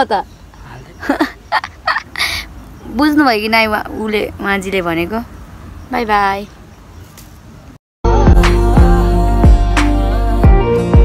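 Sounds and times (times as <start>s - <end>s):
woman laughing: 1.0s - 2.5s.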